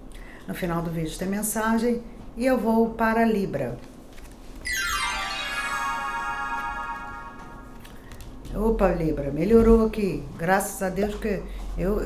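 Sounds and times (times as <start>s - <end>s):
chime transition sound effect: 4.7s - 7.9s.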